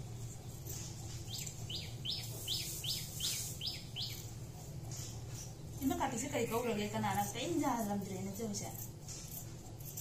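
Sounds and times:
steady low hum: 0.0 - 10.0
small bird chirping: 0.1 - 7.0.

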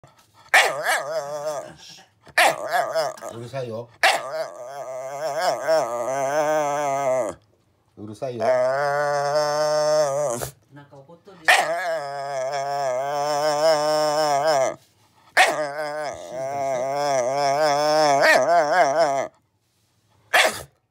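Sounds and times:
dog howling whine: 4.2 - 7.5, 8.4 - 10.6, 11.6 - 14.8, 15.4 - 19.4.

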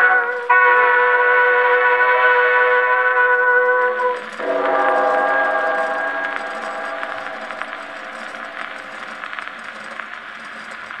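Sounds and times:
record surface crackle and ticks: 0.0 - 11.0
dance band record chord: 4.4 - 9.3.

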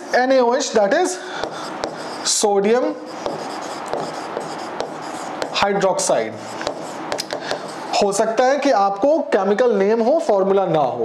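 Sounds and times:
writing scratching on a surface: 1.4 - 8.4.

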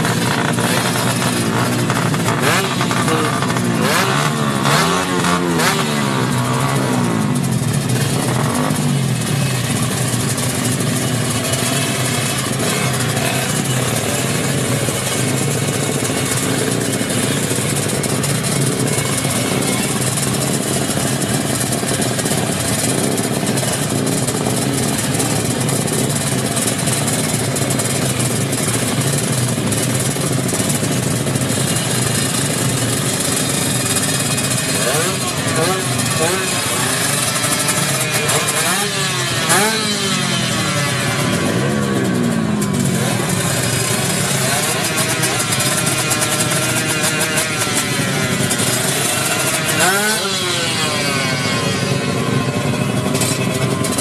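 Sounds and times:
crowd chatter: 0.0 - 54.0
motorcycle engines idling: 0.0 - 54.0.

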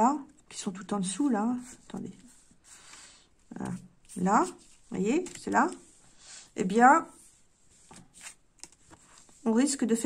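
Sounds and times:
cards scraping on tablecloth: 7.2 - 9.4.

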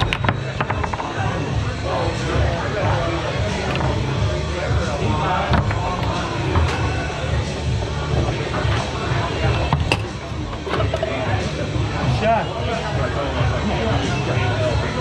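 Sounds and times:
foosball knocks on table: 0.0 - 1.2
background music: 0.0 - 15.0
room chatter: 0.0 - 15.0.

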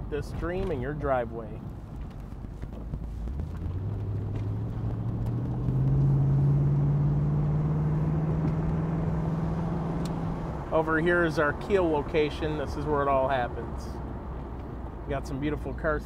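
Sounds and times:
car engine accelerating: 2.0 - 15.3.

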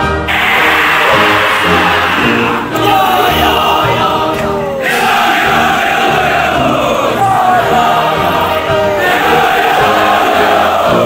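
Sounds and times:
group singing in unison: 0.3 - 11.0.

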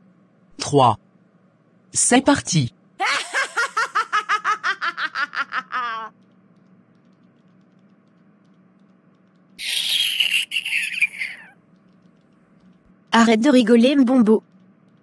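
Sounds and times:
woman laughing: 3.0 - 6.1, 9.6 - 11.5
shrill high-pitched cry: 9.6 - 11.6.

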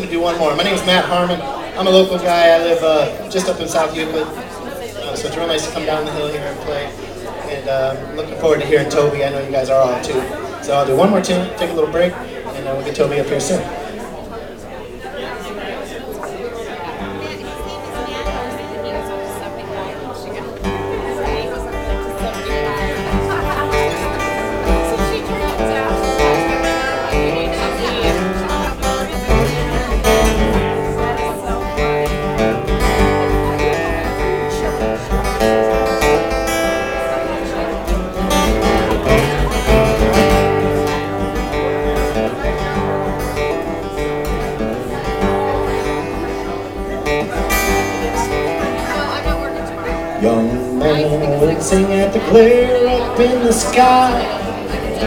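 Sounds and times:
acoustic guitar strumming: 0.0 - 15.4, 16.1 - 55.0.

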